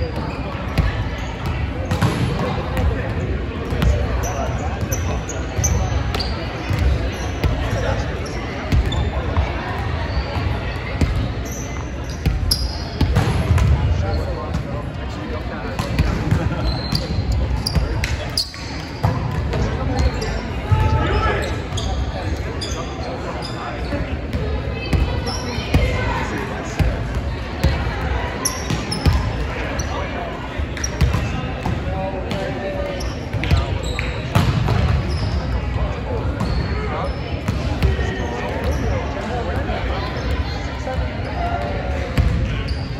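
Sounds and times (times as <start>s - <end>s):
murmur of voices: 0.0s - 42.9s
sneakers squeaking: 0.0s - 42.9s
volleyballs smacking and bouncing: 0.6s - 4.1s, 30.8s - 32.5s.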